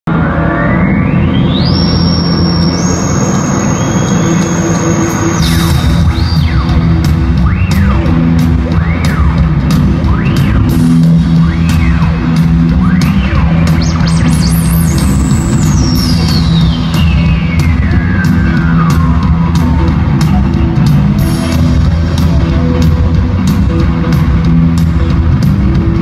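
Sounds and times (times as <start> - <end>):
bass: 0.0 - 26.0
sustained high tones: 0.1 - 19.2
drums with cymbal hits: 1.7 - 26.0.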